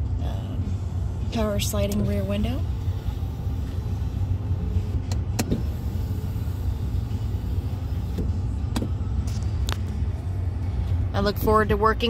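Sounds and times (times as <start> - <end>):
steady low rumble: 0.0 - 12.0
window motor whine: 1.6 - 10.0
window glass latching clicks: 5.1 - 5.8.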